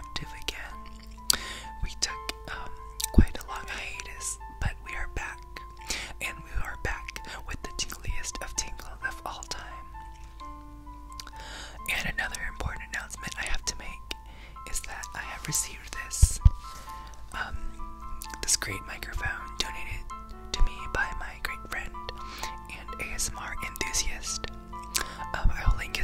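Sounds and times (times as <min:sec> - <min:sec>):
close-up whispering: 0:00.0 - 0:00.8, 0:01.8 - 0:05.4, 0:06.2 - 0:09.8, 0:11.9 - 0:16.5, 0:17.3 - 0:21.9, 0:22.7 - 0:24.4, 0:25.0 - 0:26.0
soft slow melody: 0:00.0 - 0:26.0.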